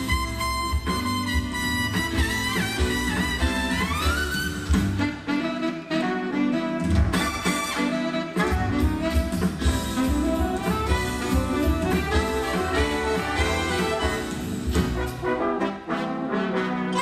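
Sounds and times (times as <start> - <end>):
jazz band playing: 0.0 - 17.0
horn line sliding up in pitch: 9.9 - 14.6.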